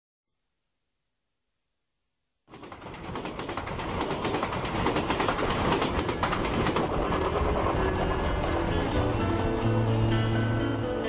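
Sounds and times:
crackling clattering noise: 2.5s - 9.9s
low held notes: 6.8s - 11.0s.

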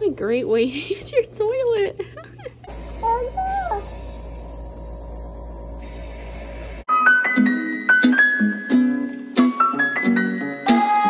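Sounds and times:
air compressor humming: 2.7s - 6.9s.

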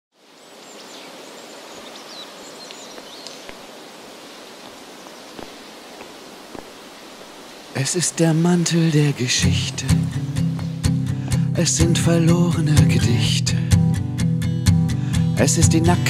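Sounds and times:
open-air hiss: 0.1s - 16.0s
man singing: 7.8s - 13.9s, 14.9s - 16.0s.

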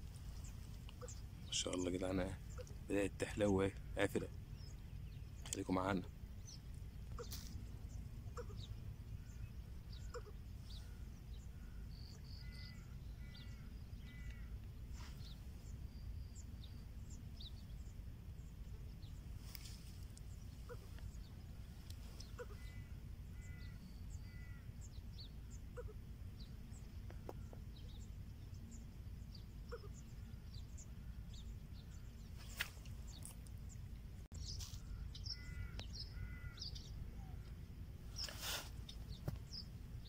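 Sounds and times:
birds chirping: 0.0s - 40.0s
low background rumble: 0.0s - 40.0s.

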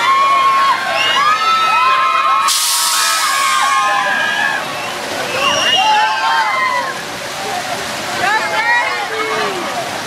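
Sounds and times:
loud hiss: 2.4s - 3.7s.

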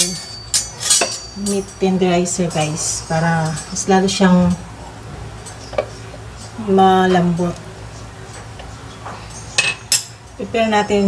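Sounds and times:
metal mallet clinking: 0.0s - 4.6s.

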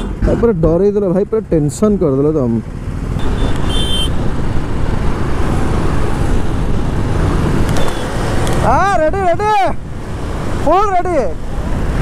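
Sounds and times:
tyres on road: 0.0s - 12.0s
wind rushing over microphone: 2.6s - 12.0s
man calling out: 8.6s - 9.8s, 10.6s - 11.4s.

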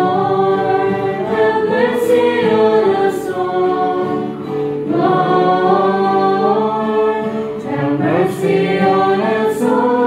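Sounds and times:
group chanting in unison: 0.0s - 10.0s.

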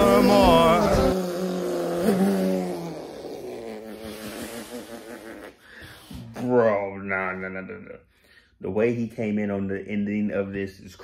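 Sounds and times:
man laughing: 0.0s - 1.2s
recorded singing: 0.0s - 1.2s
man humming: 0.0s - 5.8s.

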